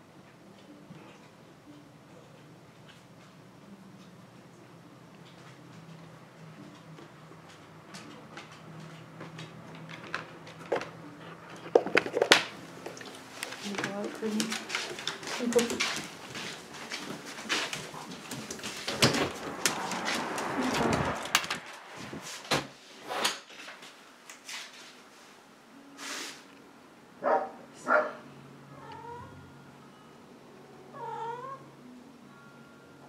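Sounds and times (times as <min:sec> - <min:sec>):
knocks and rustling: 0:13.6 - 0:23.6
cats meowing: 0:30.9 - 0:31.7.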